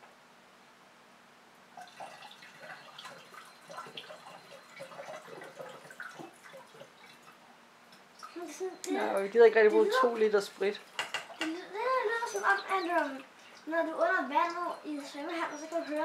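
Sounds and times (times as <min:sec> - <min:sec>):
water trickling and dripping: 0:01.7 - 0:16.0.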